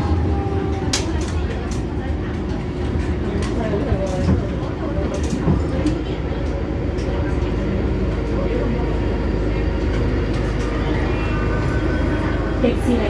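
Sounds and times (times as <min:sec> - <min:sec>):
train wheels rumbling on rail: 0:00.0 - 0:13.0.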